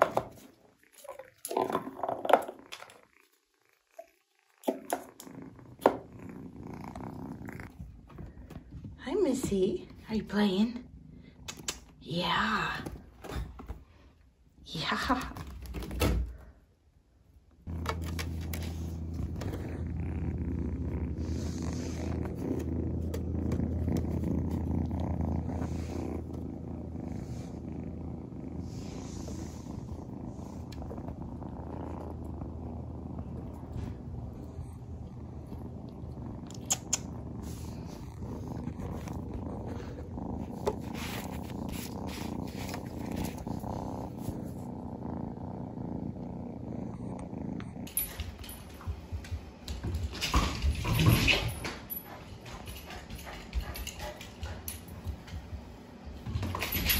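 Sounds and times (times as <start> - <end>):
kitten purring: 0.0 - 56.9.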